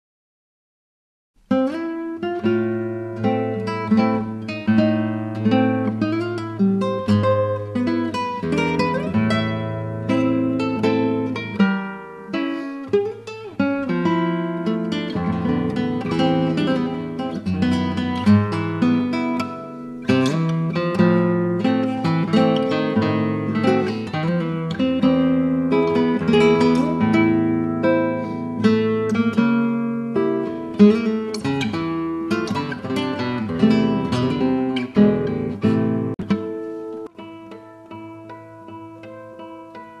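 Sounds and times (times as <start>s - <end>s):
classical guitar solo: 1.4s - 40.0s.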